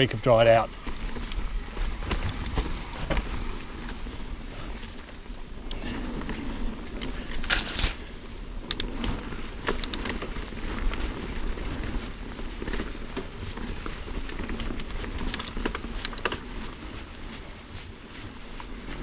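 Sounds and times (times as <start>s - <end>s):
bike clicks and rattles: 0.0s - 19.0s
bike tyres rolling on dirt: 0.0s - 19.0s.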